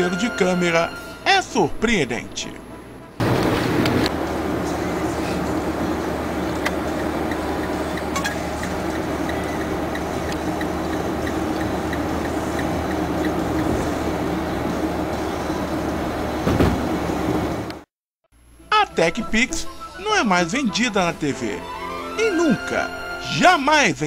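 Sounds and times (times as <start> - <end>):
car road and engine noise: 2.7 - 17.9.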